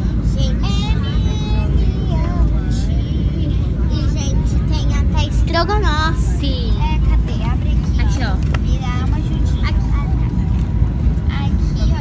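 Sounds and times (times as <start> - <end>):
airliner engine and air rumble: 0.0 - 12.0
faint voices: 0.0 - 12.0.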